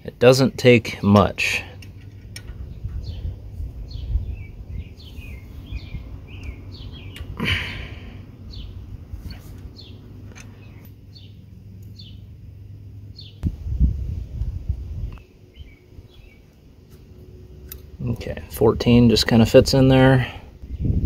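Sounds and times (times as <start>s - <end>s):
small birds chirping: 0.0s - 13.4s, 15.0s - 21.0s
low background rumble: 0.0s - 21.0s.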